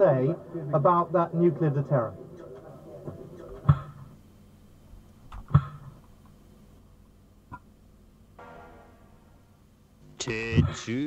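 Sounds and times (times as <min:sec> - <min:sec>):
sharp loud hits: 0:08.4 - 0:10.2.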